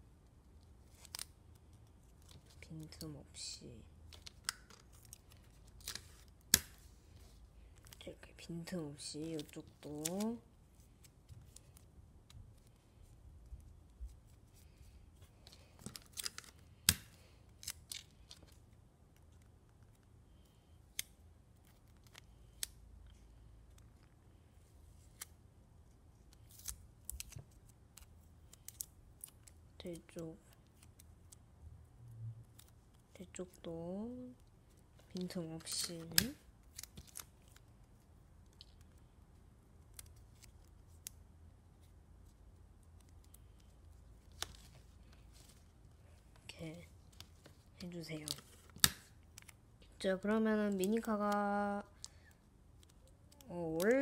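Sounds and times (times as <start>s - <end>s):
paper and tape crackling: 4.1s - 8.1s, 9.0s - 20.1s, 34.2s - 39.1s
paper and tape crinkle: 9.0s - 18.7s.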